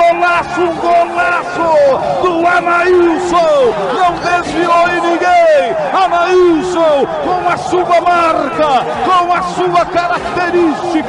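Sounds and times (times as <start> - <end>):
faint crowd: 0.0 - 11.0
man commentating excitedly: 0.0 - 11.0.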